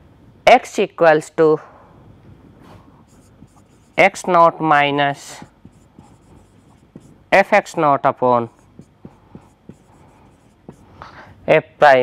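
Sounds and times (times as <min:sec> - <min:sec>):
marker scratching on whiteboard: 0:03.0 - 0:07.8, 0:08.4 - 0:11.0.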